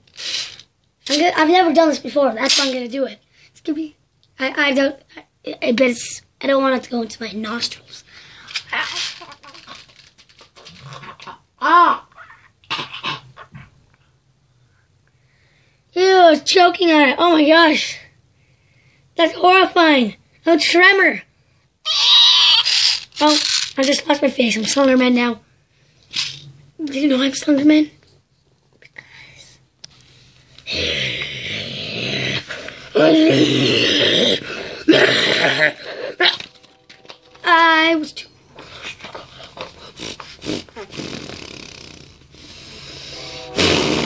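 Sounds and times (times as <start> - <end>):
boy making raspy breathy vocal noises: 30.6 - 36.4, 38.6 - 43.2.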